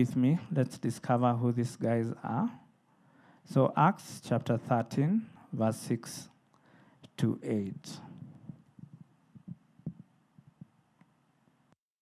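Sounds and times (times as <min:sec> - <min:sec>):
microphone handling thumps: 0:08.0 - 0:10.7.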